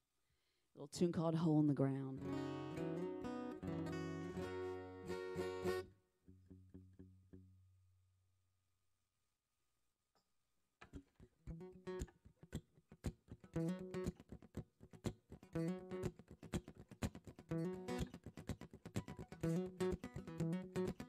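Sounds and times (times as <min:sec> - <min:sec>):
acoustic guitar strummed chords: 0:02.2 - 0:07.6, 0:19.0 - 0:21.0.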